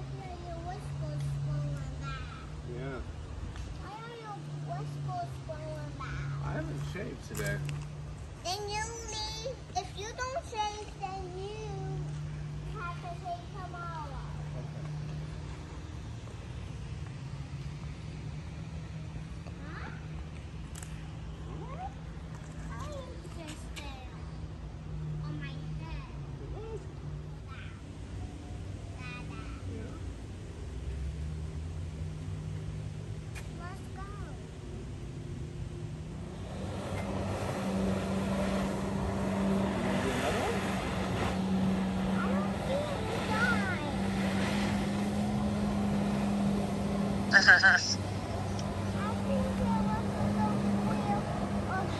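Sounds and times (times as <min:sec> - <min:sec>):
motorboat engine hum: 0:34.6 - 0:51.9.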